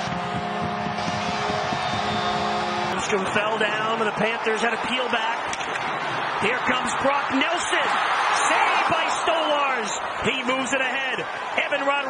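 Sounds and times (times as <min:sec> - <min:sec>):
arena crowd noise: 0:00.0 - 0:12.0
sports commentator talking: 0:02.9 - 0:05.4, 0:06.4 - 0:12.0.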